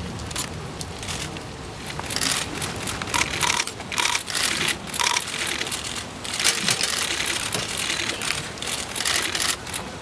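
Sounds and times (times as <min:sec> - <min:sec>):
rapid crisp clicking: 0:02.0 - 0:09.9.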